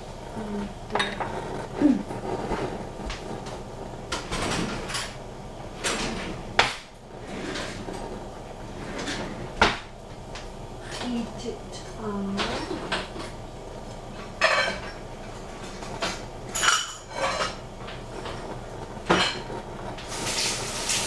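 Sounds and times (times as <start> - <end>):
cookware and cupboards clattering: 0.9 - 2.2, 11.8 - 13.4, 14.4 - 18.4, 19.0 - 21.0.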